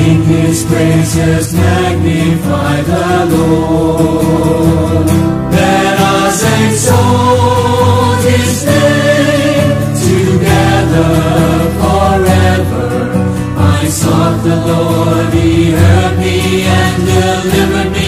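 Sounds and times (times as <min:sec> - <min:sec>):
group singing worship song: 0:00.0 - 0:18.0
instrumental backing with bass: 0:00.0 - 0:18.0.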